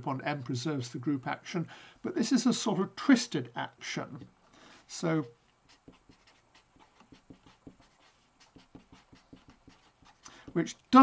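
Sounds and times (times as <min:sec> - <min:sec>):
marker scratching on paper: 0:04.1 - 0:10.8.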